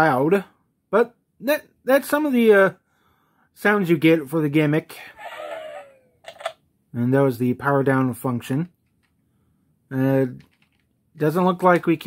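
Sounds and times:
toy electronic falling tones: 0:05.2 - 0:06.5.

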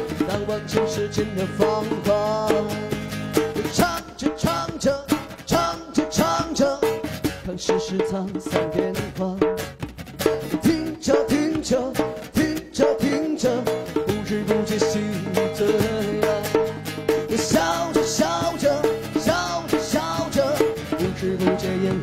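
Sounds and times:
man singing: 0:00.0 - 0:09.6, 0:10.5 - 0:22.0
acoustic guitar strumming: 0:00.0 - 0:22.0
drums keeping a steady beat: 0:00.0 - 0:22.0.

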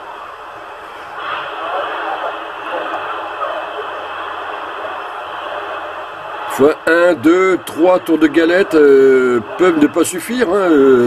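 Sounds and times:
radio static hiss: 0:00.0 - 0:11.0
distant radio voices talking: 0:01.1 - 0:11.0.

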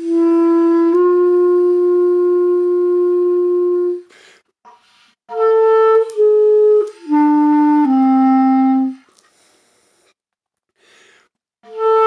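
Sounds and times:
clarinet long note: 0:00.0 - 0:04.1, 0:05.3 - 0:09.0, 0:11.6 - 0:12.0
short breathy noise: 0:09.1 - 0:10.2.

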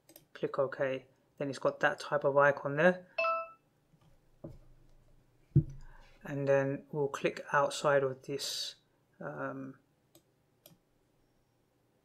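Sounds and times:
bright bell-like ding: 0:03.2 - 0:03.6
faint low knock: 0:05.6 - 0:05.8.

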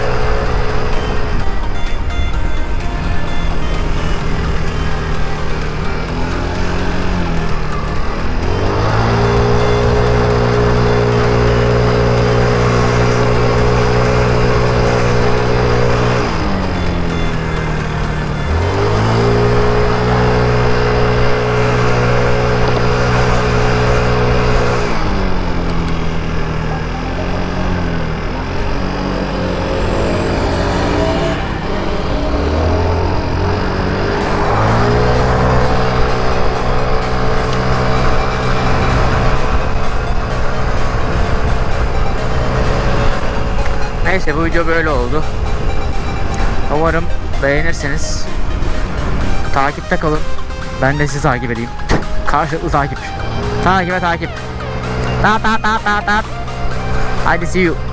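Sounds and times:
scooter engine droning: 0:00.0 - 0:57.9.

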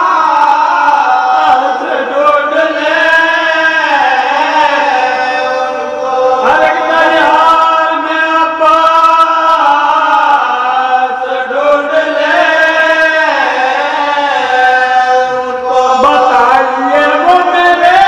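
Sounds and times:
men chanting into a microphone: 0:00.0 - 0:18.0.

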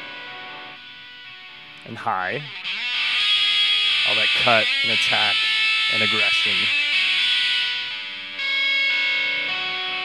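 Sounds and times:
overdriven bass guitar chords: 0:00.0 - 0:10.0.

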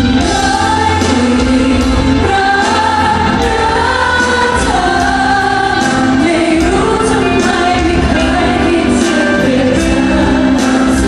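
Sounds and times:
live pop music: 0:00.0 - 0:11.0
singers holding long notes: 0:00.0 - 0:11.0.

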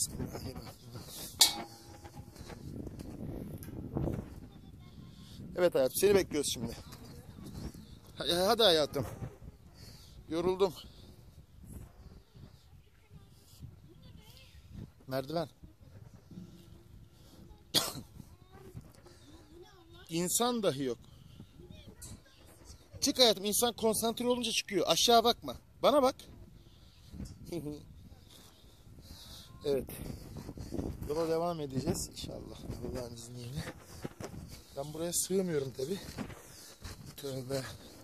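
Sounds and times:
sharp metal clank: 0:01.4 - 0:02.5
person coughing: 0:17.7 - 0:18.1.

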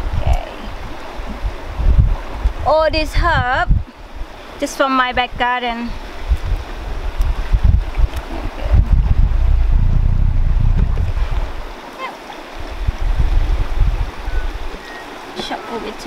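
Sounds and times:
wind buffeting microphone: 0:00.0 - 0:16.0.

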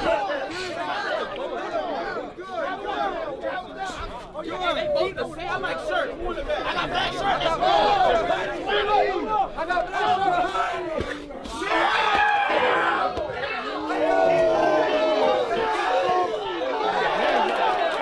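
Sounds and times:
crowd chattering and calling out: 0:00.0 - 0:18.0.

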